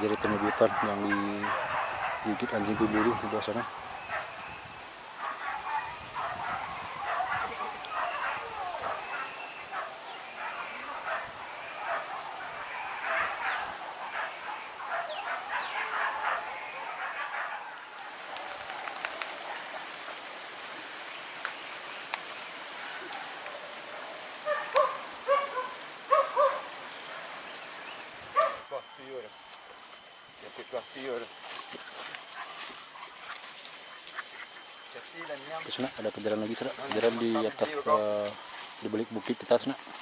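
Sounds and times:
hunting dogs barking and yelping: 0.0s - 20.7s, 21.7s - 40.0s.

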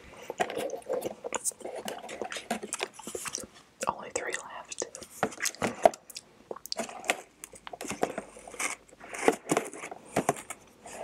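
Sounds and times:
close chewing mouth sounds: 4.1s - 8.0s.

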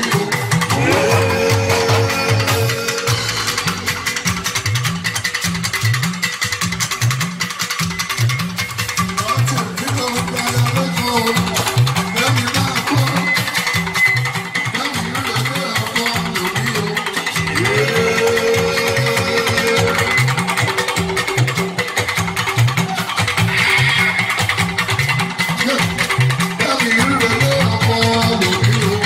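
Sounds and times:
repeating bass line: 0.0s - 6.2s, 9.1s - 21.6s
electric guitars: 0.0s - 29.0s
live band music: 0.0s - 29.0s.

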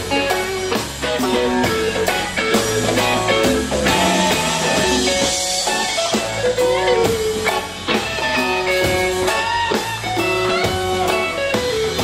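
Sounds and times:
bass guitar: 0.0s - 12.0s
drum kit hits: 0.0s - 12.0s
electric guitar notes: 0.0s - 12.0s.

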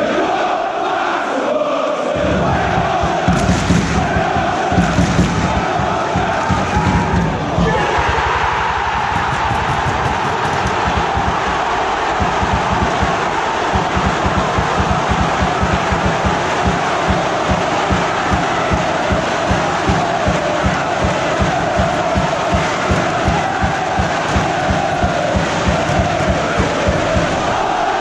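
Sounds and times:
stadium crowd cheering: 0.0s - 28.0s
steady low beat: 2.2s - 7.8s, 9.1s - 27.8s.

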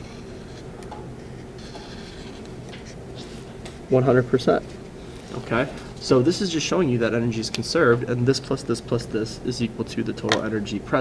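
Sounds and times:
steady low hum: 0.0s - 11.0s
marker scratching on paper: 0.1s - 3.5s.

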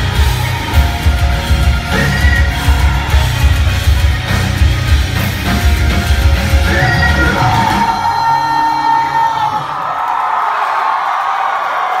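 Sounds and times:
live rock band playing: 0.0s - 9.7s
crowd yelling and whooping: 0.0s - 12.0s.

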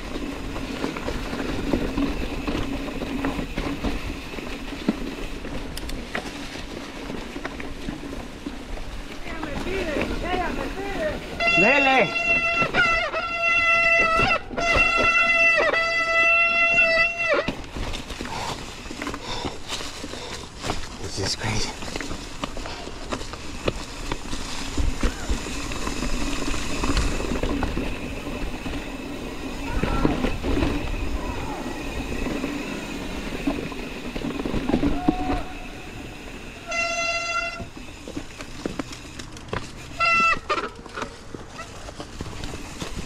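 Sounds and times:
bicycle freehub buzzing: 0.0s - 20.9s, 21.8s - 43.0s
tyres rolling on dirt and leaves: 0.0s - 43.0s.

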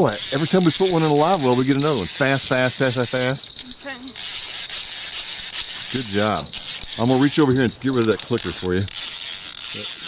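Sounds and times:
fishing reel line clicking: 0.0s - 10.0s
night insects chirring: 0.0s - 10.0s.

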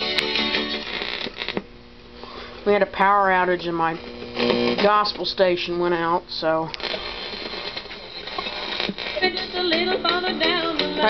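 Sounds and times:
radio static hiss: 0.0s - 11.0s
radio click: 0.9s - 1.7s, 3.2s - 5.3s, 6.7s - 9.4s.

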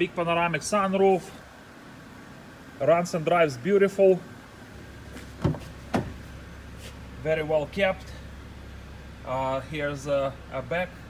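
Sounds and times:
steady low hum: 0.0s - 11.0s
car door latch clunks: 5.4s - 6.3s.

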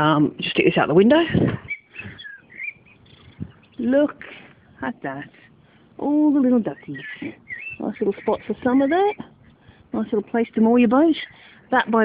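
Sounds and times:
bird chirps: 1.6s - 4.0s, 6.6s - 9.4s.

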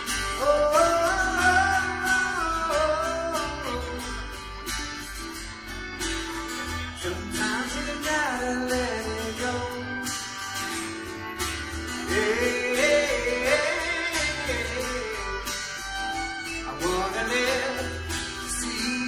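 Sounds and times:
strummed acoustic guitar: 0.0s - 19.0s
upright bass: 0.0s - 19.0s.

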